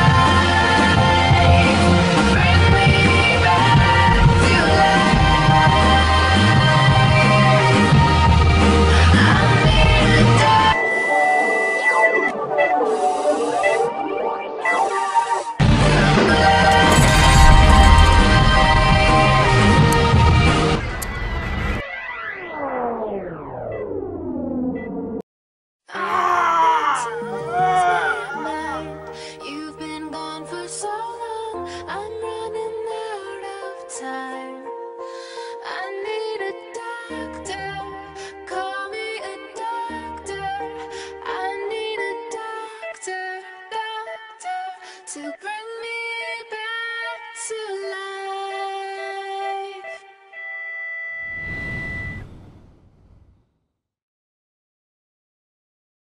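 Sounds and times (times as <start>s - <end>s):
man screaming: 26.0s - 28.9s
falling pitch sweep: 51.2s - 53.3s
low rushing whoosh: 51.2s - 53.4s.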